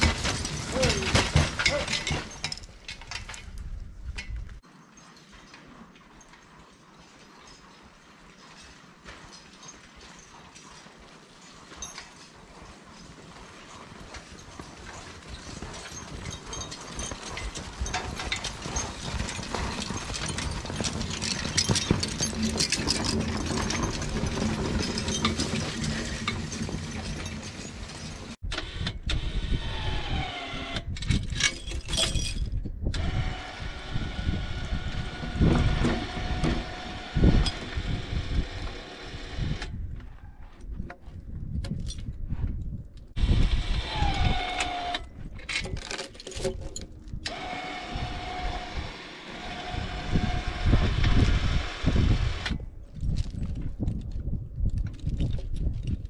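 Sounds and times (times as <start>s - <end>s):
chains clinking: 0.0s - 28.4s, 31.1s - 32.7s, 45.3s - 47.4s
wheels and dragged log rumbling: 0.0s - 28.5s, 29.4s - 56.0s.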